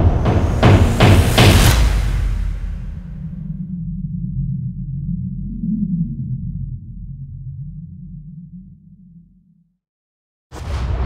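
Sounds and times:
deep low drone: 0.0s - 9.8s.

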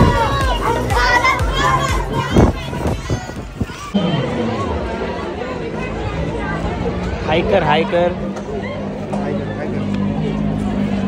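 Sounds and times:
children calling out and talking: 0.0s - 7.2s.

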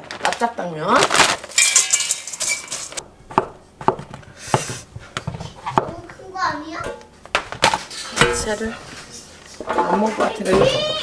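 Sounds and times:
knife chopping on wooden board: 3.3s - 4.7s.

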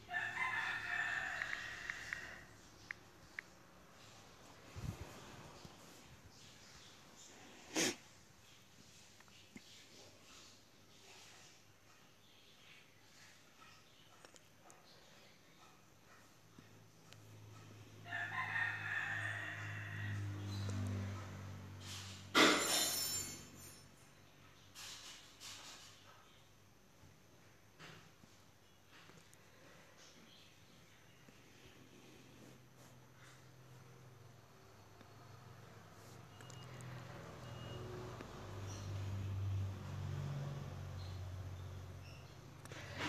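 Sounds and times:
rooster crowing: 0.0s - 2.6s, 18.0s - 20.5s.

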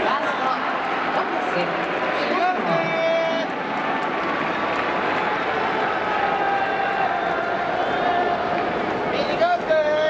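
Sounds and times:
stadium crowd din: 0.0s - 10.0s.

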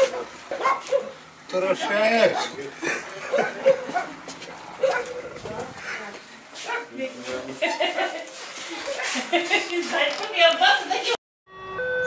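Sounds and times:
people laughing: 2.6s - 4.3s, 7.3s - 10.0s.

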